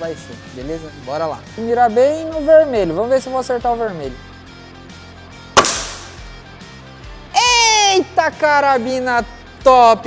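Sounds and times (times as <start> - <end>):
air rifle shot: 5.6 - 6.4.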